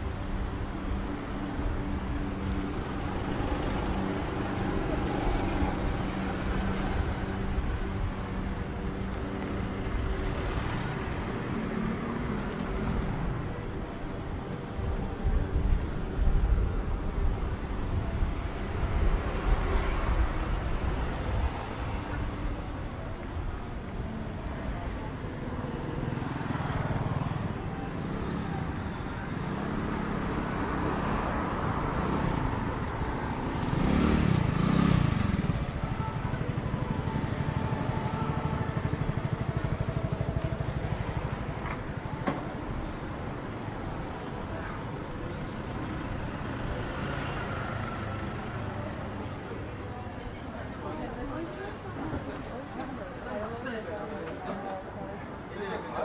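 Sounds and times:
scooters and cars passing: 0.0 - 56.0
steady traffic noise: 0.0 - 56.0.

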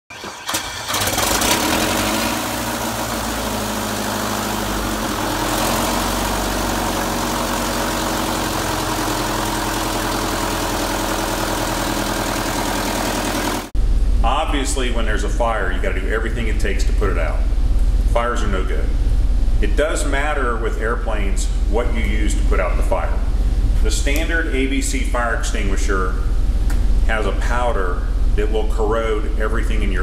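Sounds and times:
engine cranking and running: 0.1 - 13.7.

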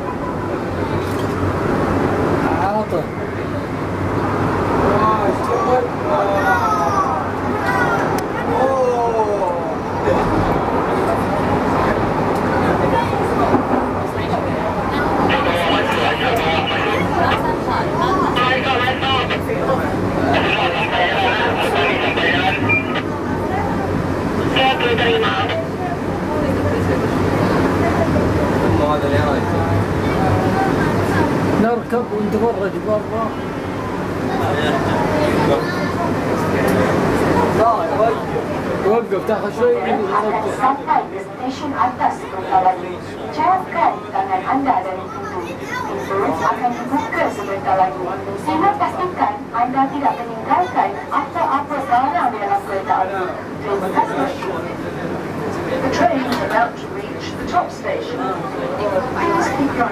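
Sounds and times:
low rumble of railway car: 0.0 - 59.9
passengers talking: 0.0 - 59.9
railway car rumbling on rails: 9.7 - 18.0.

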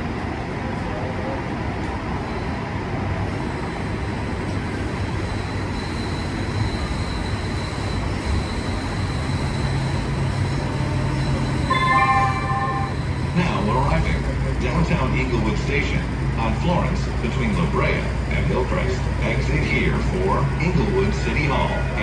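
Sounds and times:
train wheels rumbling on rail: 0.0 - 22.0
faint high whine: 10.8 - 13.6
cluster of high tones: 11.7 - 13.2.

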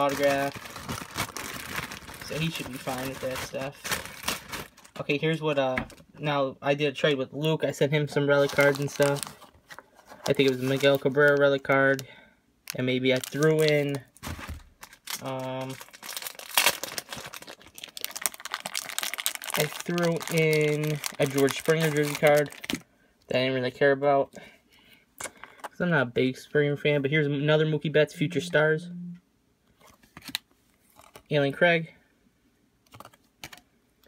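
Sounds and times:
plastic bag crinkling: 0.0 - 5.0, 8.3 - 12.0, 12.7 - 22.8.

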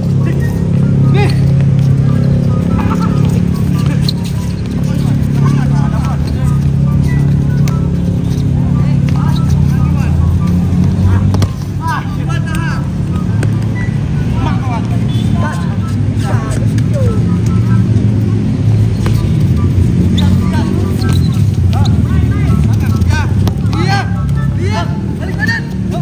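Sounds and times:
ball being kicked: 11.2 - 11.7, 22.8 - 23.8.

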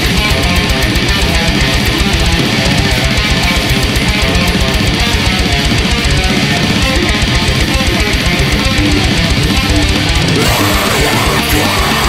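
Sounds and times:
distorted electric guitar riff: 0.0 - 12.0
heavy metal band: 0.0 - 12.0.

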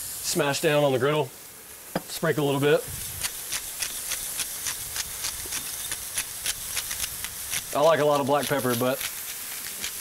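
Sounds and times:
patties sizzling on a griddle: 0.0 - 10.0.

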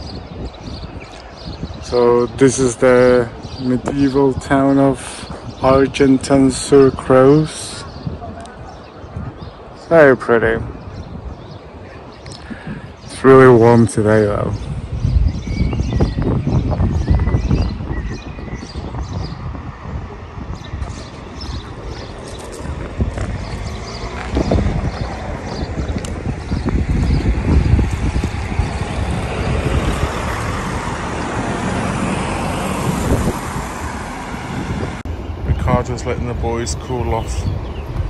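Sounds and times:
road traffic: 0.0 - 38.0
wind buffeting microphone: 0.0 - 38.0.

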